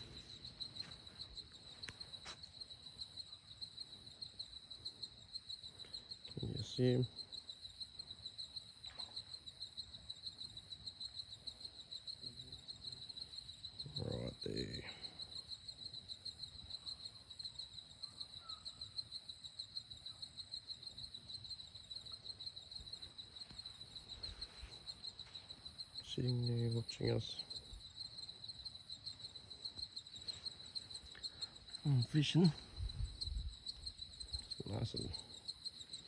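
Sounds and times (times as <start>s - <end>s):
night insects chirring: 0.0s - 36.0s.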